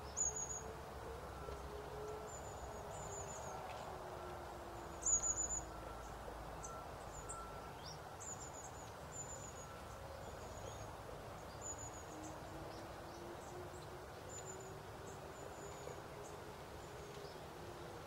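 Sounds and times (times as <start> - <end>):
faint outdoor background noise: 0.0 - 18.0
small birds chirping: 4.8 - 17.6.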